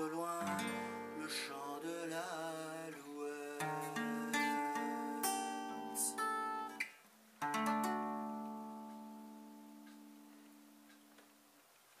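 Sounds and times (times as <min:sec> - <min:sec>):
acoustic guitar chord ringing: 0:00.0 - 0:02.9, 0:03.5 - 0:06.8, 0:07.4 - 0:10.9.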